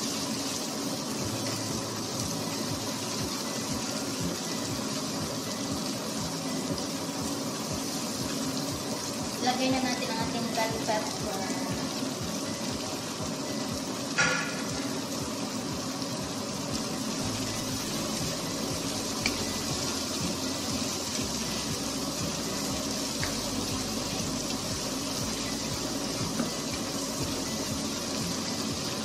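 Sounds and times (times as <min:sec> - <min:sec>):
vegetables sizzling in a frying pan: 0:00.0 - 0:29.0.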